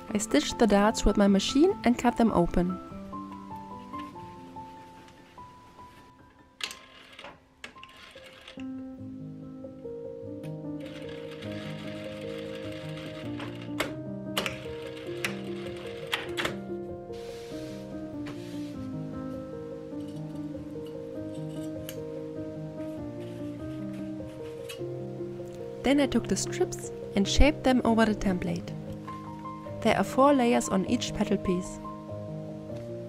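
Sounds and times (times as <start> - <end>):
piano music: 0.0 - 33.0
sewing machine stitching: 6.6 - 8.6, 10.8 - 16.3.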